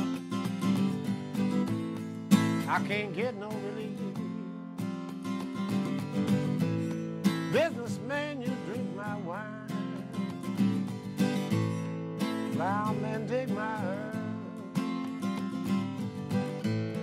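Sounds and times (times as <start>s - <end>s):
acoustic guitar strumming: 0.0s - 17.0s.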